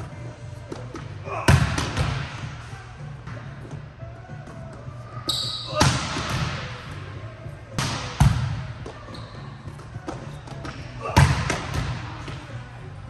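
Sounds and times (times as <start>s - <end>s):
volleyballs smacking on hard court: 0.7s - 2.5s, 7.8s - 9.0s, 9.7s - 12.5s.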